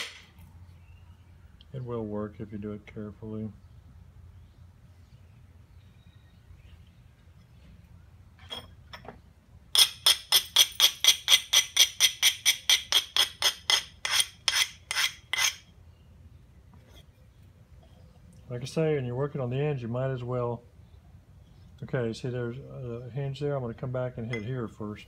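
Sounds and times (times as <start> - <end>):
ringing strokes on flint stone: 9.7 - 15.7.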